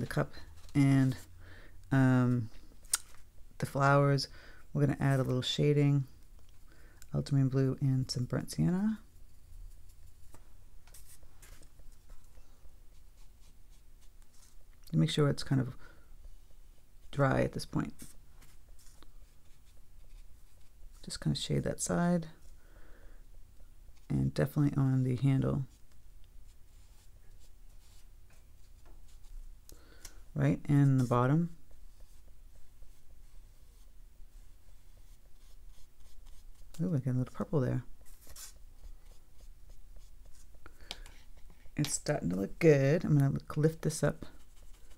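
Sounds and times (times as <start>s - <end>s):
person speaking: 0.0s - 6.2s, 7.1s - 9.2s, 17.0s - 22.5s, 23.9s - 25.9s, 30.3s - 32.3s, 34.7s - 44.9s
brush strokes on paper: 0.1s - 1.3s, 9.0s - 14.7s, 16.2s - 21.2s, 25.6s - 29.4s, 30.7s - 41.8s, 44.2s - 44.9s.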